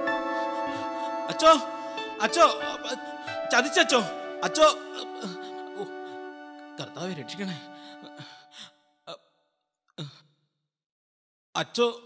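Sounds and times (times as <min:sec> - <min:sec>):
man's wordless vocal sounds: 0:00.8 - 0:06.1.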